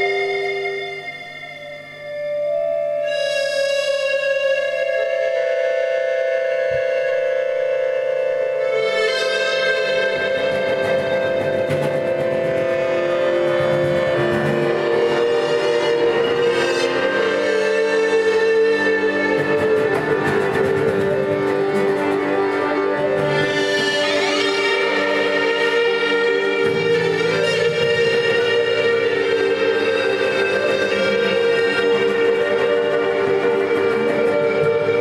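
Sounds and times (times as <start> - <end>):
accordion: 8.6 - 35.0
bowed double bass: 9.6 - 35.0.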